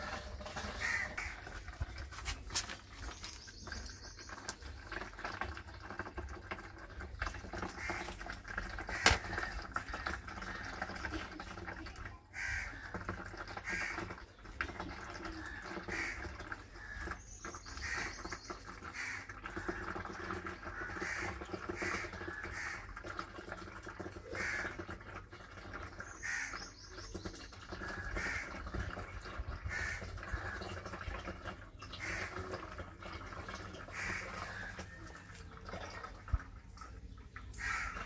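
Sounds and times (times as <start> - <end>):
birds calling: 0.0 - 6.1, 12.4 - 23.0, 25.7 - 31.1, 31.7 - 38.0.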